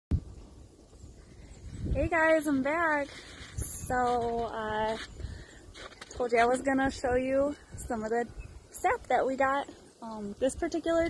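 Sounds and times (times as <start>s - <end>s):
wind buffeting microphone: 0.1s - 11.0s.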